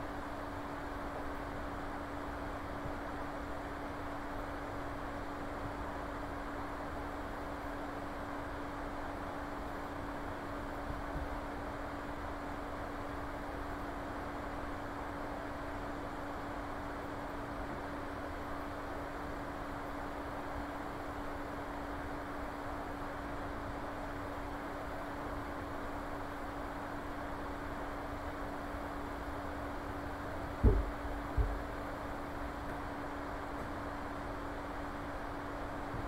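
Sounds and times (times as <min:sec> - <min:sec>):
low electrical hum: 0:00.0 - 0:36.0
short low thumps: 0:30.6 - 0:31.8.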